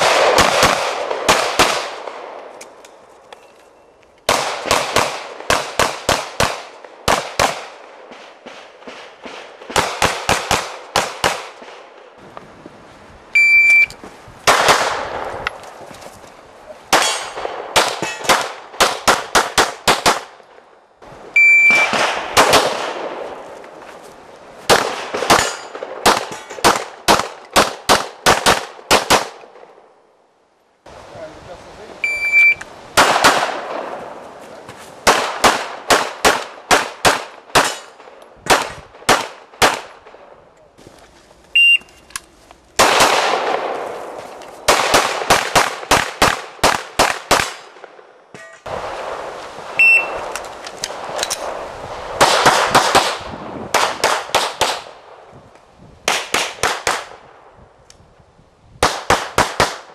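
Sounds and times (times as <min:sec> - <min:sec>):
rapid pistol shots: 0:00.0 - 0:02.3, 0:04.3 - 0:07.8, 0:08.5 - 0:11.6, 0:35.1 - 0:40.1, 0:44.7 - 0:47.9, 0:52.2 - 0:54.9
shot timer start beep: 0:13.4 - 0:13.9, 0:21.4 - 0:21.9, 0:32.0 - 0:32.6, 0:41.6 - 0:41.8, 0:49.8 - 0:50.2.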